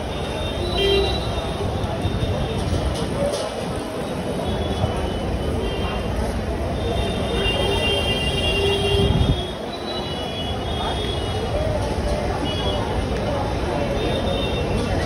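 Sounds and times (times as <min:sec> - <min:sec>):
crowd voices: 0:00.0 - 0:15.0
vehicles rumbling: 0:00.0 - 0:15.0.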